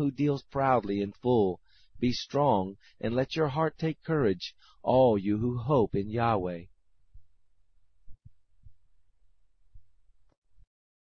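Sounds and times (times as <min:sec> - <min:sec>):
faint low hum: 0:00.0 - 0:10.7
soft low thuds: 0:08.0 - 0:08.9.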